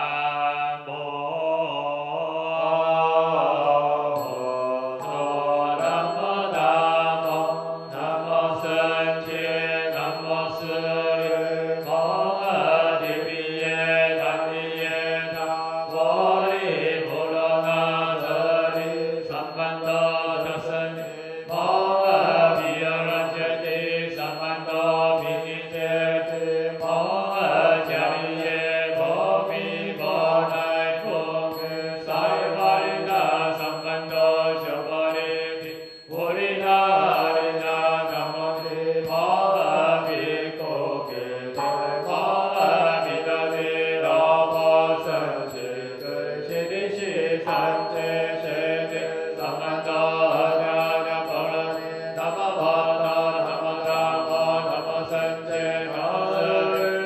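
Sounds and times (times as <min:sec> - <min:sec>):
group chanting in unison: 0:00.0 - 0:35.6, 0:36.2 - 0:57.0.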